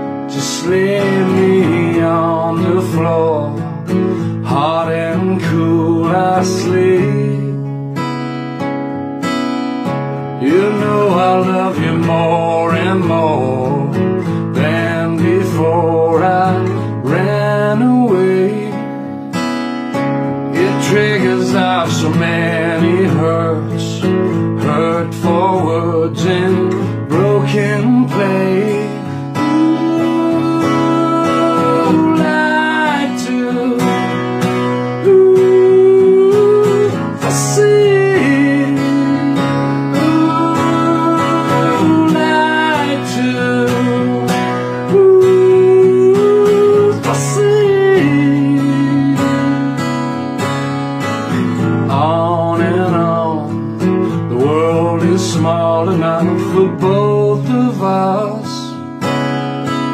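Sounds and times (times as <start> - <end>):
man singing: 0.0 - 8.0, 10.1 - 19.2, 20.2 - 59.0
strummed acoustic guitar: 0.0 - 59.9.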